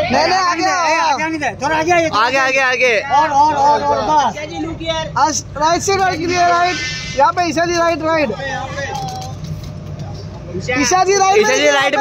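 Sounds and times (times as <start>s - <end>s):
man shouting: 0.0s - 5.1s
engine idling: 0.0s - 12.0s.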